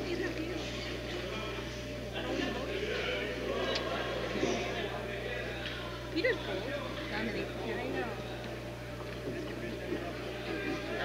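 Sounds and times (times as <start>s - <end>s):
indistinct voices: 0.0s - 11.0s
steady low hum: 0.0s - 11.0s.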